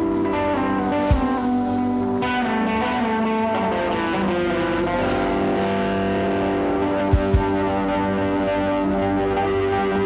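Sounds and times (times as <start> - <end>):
band music with held chords: 0.0 - 10.0
electric guitar melody: 0.0 - 10.0.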